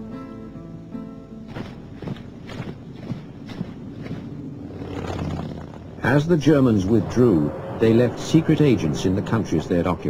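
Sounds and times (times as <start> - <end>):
faint music: 0.0 - 5.1.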